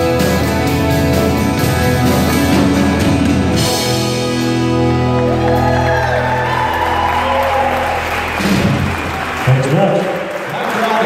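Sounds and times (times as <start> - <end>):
rock band final chord: 0.0 - 9.5
audience applause and cheering: 2.8 - 11.0.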